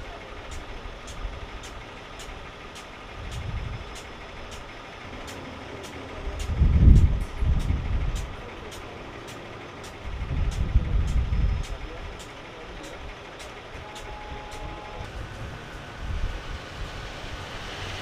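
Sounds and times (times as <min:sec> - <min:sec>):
high regular ticking: 0:00.0 - 0:16.0
engine rumble idling: 0:00.0 - 0:18.0.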